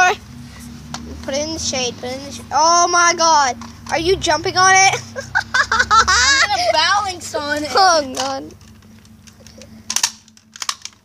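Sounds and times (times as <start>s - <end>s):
plastic toy cracking and snapping: 8.1s - 11.0s.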